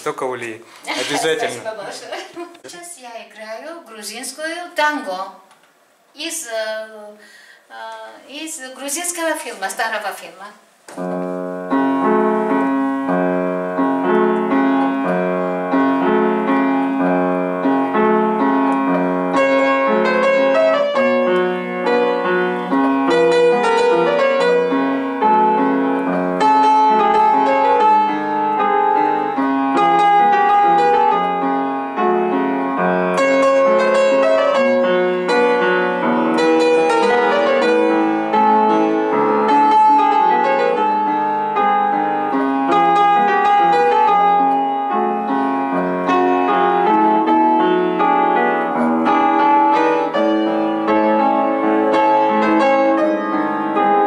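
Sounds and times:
upright piano playing tango: 0:11.0 - 0:54.0.

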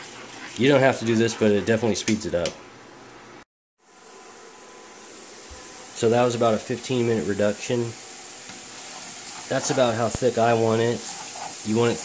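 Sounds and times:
sauce sizzling in frying pan: 0:04.9 - 0:12.0.

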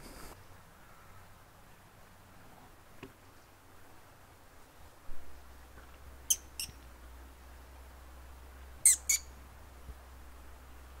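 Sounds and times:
faint outdoor background: 0:00.0 - 0:11.0
short high bird calls: 0:06.3 - 0:06.8, 0:08.8 - 0:09.3.

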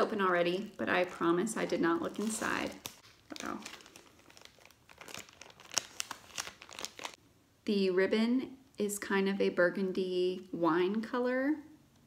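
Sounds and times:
envelope crinkling and rustling: 0:00.0 - 0:07.2
packaging snaps: 0:02.1 - 0:07.2.

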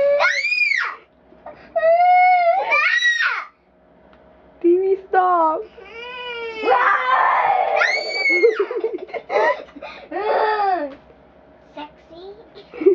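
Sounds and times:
girl's high squeal: 0:00.0 - 0:01.0, 0:01.8 - 0:03.5, 0:05.9 - 0:08.6.

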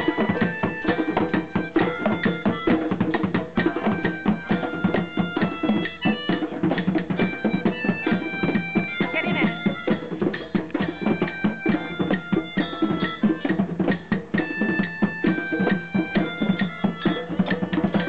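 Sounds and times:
hand drums fast rhythm: 0:00.0 - 0:18.0.

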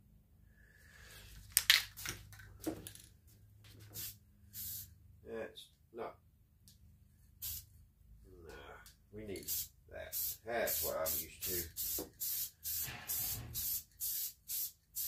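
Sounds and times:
aerosol spray hissing: 0:04.0 - 0:04.9, 0:07.4 - 0:07.6, 0:09.5 - 0:15.0.

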